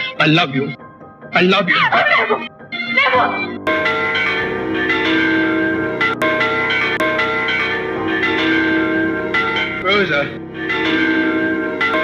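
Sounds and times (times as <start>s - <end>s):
church bells ringing: 3.5s - 12.0s.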